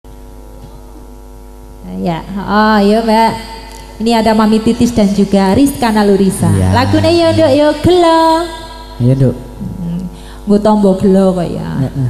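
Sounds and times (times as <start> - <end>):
electrical mains hum: 0.1 - 12.0
woman's voice: 4.0 - 12.0.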